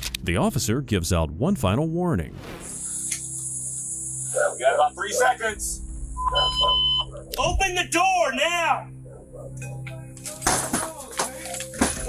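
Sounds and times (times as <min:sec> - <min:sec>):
door crashing: 0:10.4 - 0:12.0.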